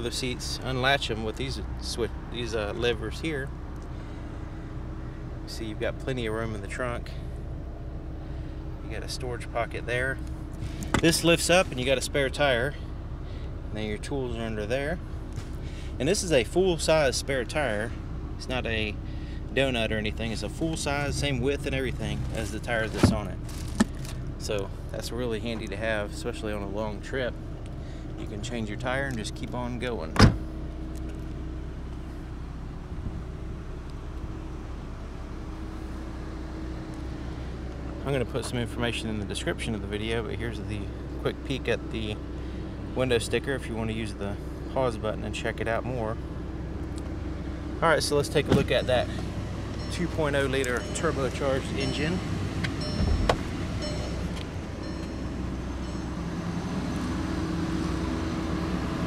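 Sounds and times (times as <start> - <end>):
car engine idling: 0.0 - 59.0.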